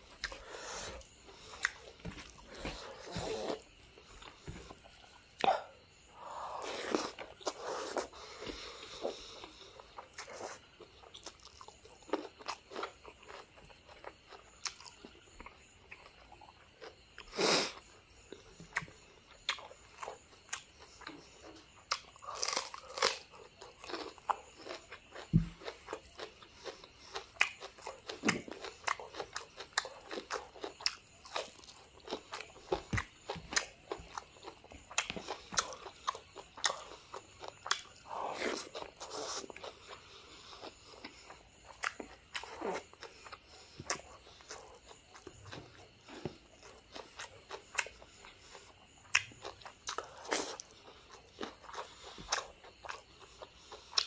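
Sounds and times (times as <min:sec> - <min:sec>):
person chewing with wet smacks: 0:00.2 - 0:02.8, 0:18.3 - 0:54.0.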